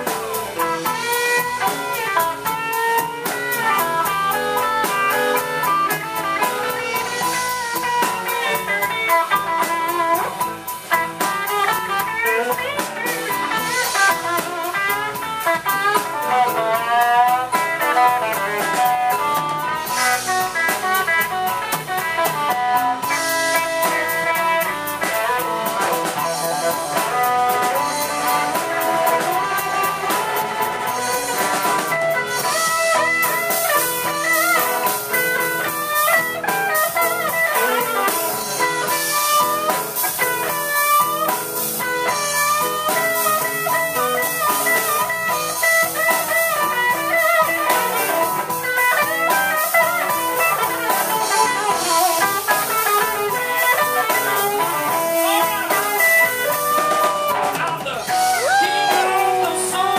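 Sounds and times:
drum kit with cymbals: 0.0s - 59.9s
electric guitar bending lead lines: 0.0s - 59.9s.

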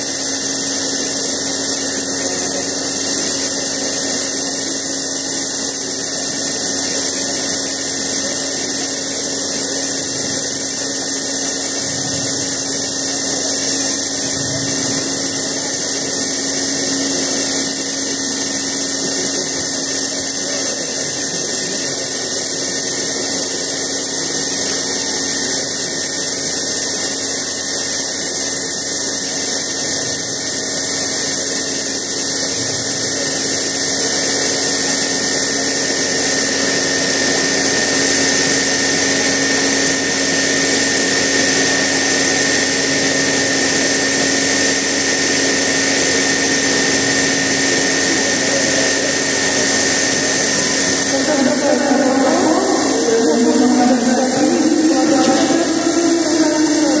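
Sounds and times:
vacuum pump drone: 0.0s - 57.0s.

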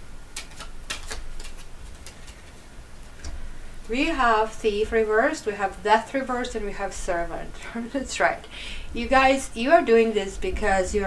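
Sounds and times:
cards being shuffled: 0.3s - 3.4s.

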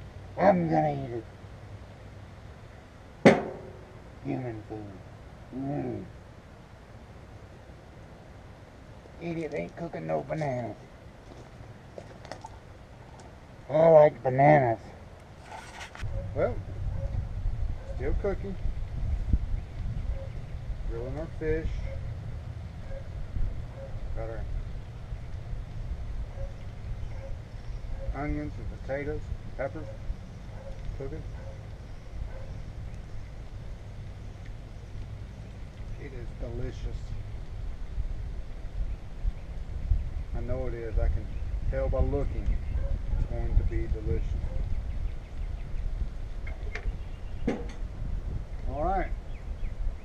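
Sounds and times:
wind rumble on microphone: 16.0s - 50.0s.

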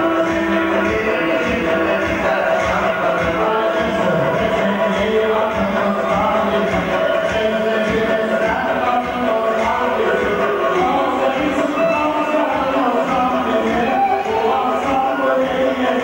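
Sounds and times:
voices singing over a beat: 0.0s - 16.0s.

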